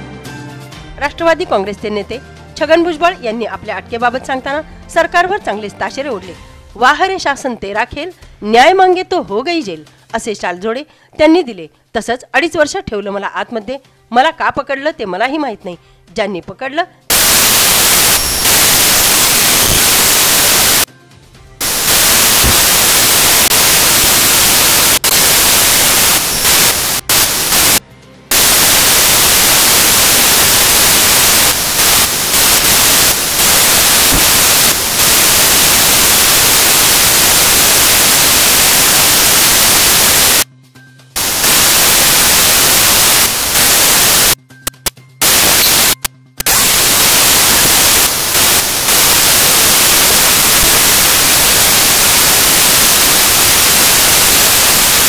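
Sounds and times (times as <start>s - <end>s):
static hiss: 17.1s - 20.9s, 21.6s - 40.5s, 41.2s - 55.0s.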